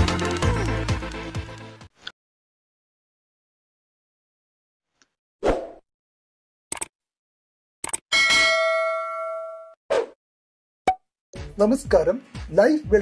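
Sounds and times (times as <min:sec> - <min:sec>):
notification bell ding: 0:08.1 - 0:09.8.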